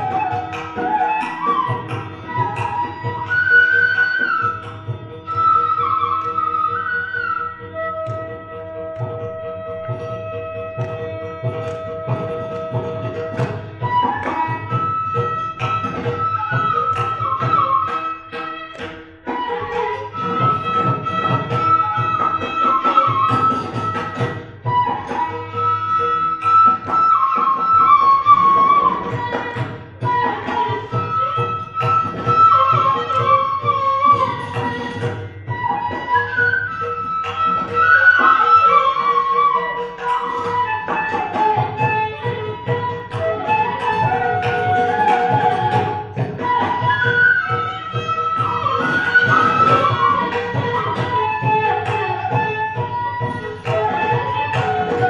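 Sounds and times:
bamboo flute melody: 0:00.0 - 0:55.0
hand drum: 0:00.0 - 0:55.0.

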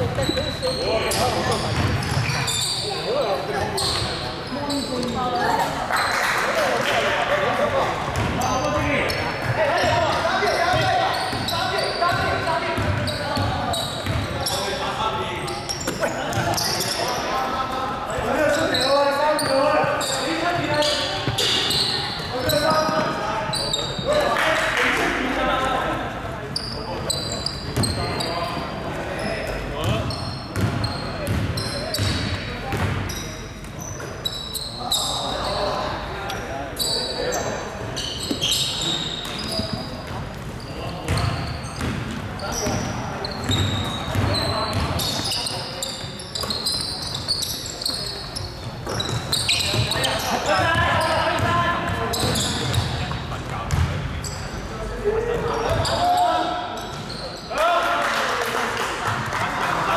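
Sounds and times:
sneakers squeaking: 0:00.0 - 0:06.6, 0:07.3 - 0:57.6
basketball bouncing on wooden floor: 0:30.6 - 0:33.0, 0:41.1 - 0:42.8, 0:53.7 - 0:54.0.

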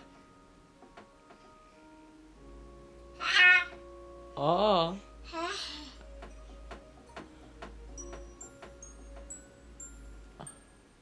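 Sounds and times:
high chime notes: 0:02.4 - 0:11.0
steady ticking: 0:03.0 - 0:11.0
music box tinkling tune: 0:06.0 - 0:11.0.

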